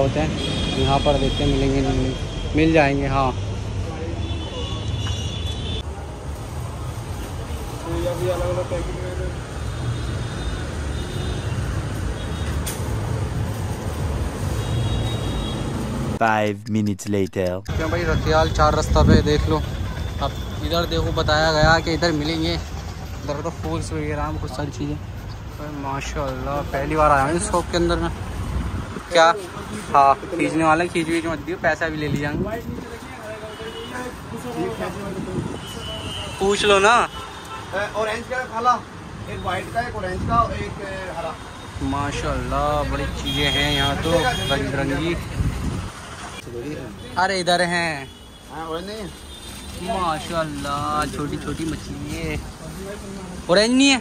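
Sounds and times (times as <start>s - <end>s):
road traffic rumble: 0.0s - 16.5s, 17.1s - 54.0s
voices talking: 16.2s - 28.3s.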